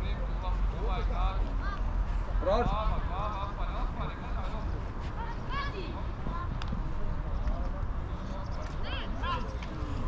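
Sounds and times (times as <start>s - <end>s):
wind buffeting microphone: 0.8s - 10.0s
distant shouts of young players: 8.7s - 9.9s.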